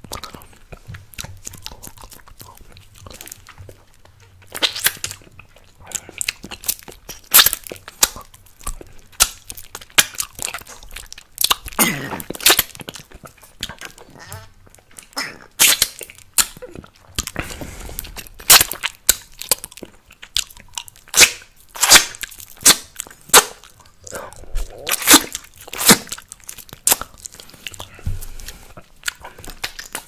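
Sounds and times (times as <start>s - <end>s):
mouth licking and sucking lollipop: 0.0s - 30.0s.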